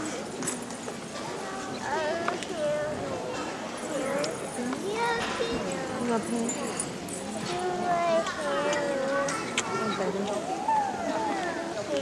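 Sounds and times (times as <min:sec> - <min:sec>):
audience chattering quietly: 0:00.0 - 0:12.0.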